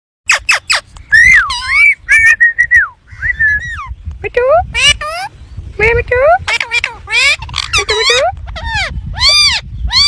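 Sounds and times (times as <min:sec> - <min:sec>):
parakeet whistled calls: 0:00.3 - 0:04.0, 0:06.5 - 0:10.0.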